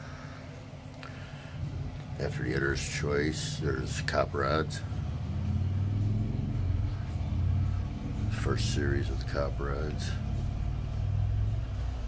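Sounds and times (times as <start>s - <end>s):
machinery low rumbling hum: 0.0s - 12.0s.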